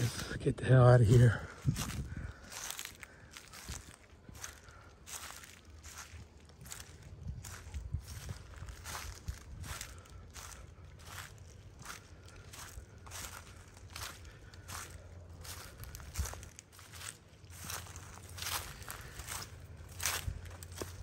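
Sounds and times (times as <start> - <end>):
footsteps crunching through dry leaves: 0.0 - 21.0.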